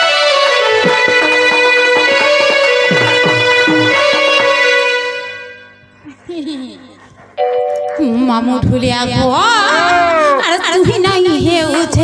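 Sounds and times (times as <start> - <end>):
held two-note instrumental tone: 0.4 - 5.5
fading music chord: 0.4 - 5.6.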